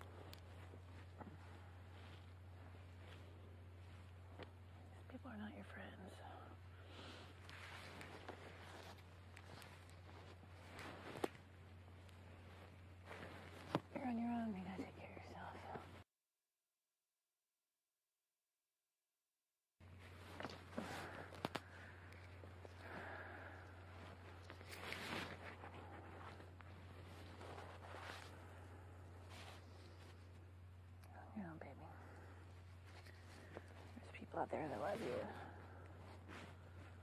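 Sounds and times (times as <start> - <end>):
faint whispering: 0.0 - 11.3, 12.3 - 16.0, 31.0 - 37.0
steady hiss and hum: 0.0 - 16.1, 19.8 - 37.0.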